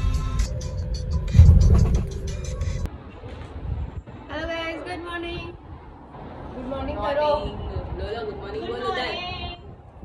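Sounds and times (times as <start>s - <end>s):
music playing: 0.0s - 2.9s
car road and engine rumble: 0.0s - 4.7s.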